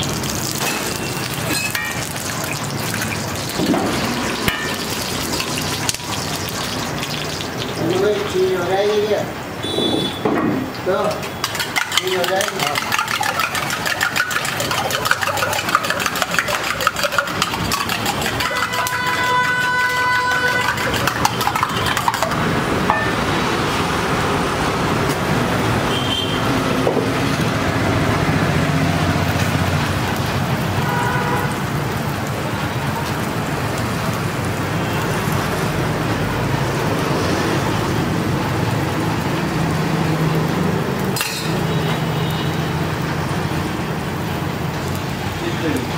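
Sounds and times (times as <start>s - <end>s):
egg sizzling on hot griddle: 0.0s - 9.8s, 10.8s - 24.2s, 26.7s - 45.9s
street traffic: 0.0s - 45.9s
horn honking: 9.6s - 10.3s, 18.4s - 21.0s, 25.9s - 26.5s, 30.8s - 31.6s
fork beating eggs in steel mug: 11.3s - 22.4s.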